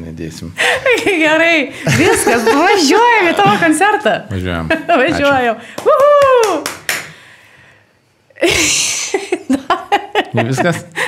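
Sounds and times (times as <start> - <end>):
sharp hand claps: 5.7 - 7.2.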